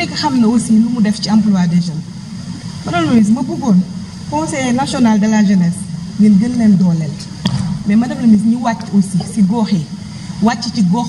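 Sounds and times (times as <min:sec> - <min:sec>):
woman speaking into a microphone: 0:00.0 - 0:02.1, 0:02.8 - 0:11.0.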